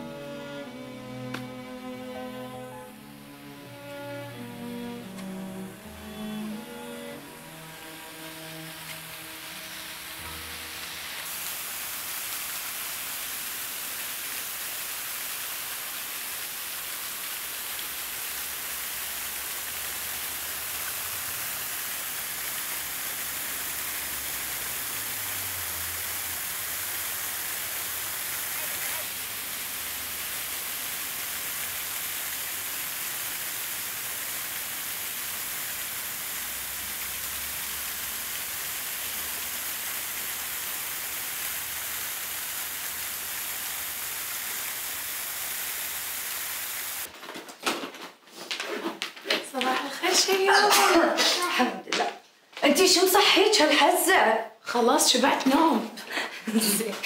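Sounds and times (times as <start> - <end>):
fountain water splashing: 7.2 - 47.1.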